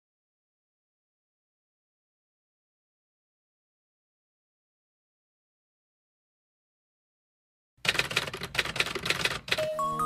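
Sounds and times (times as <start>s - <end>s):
music with bell-like notes: 9.6s - 10.0s.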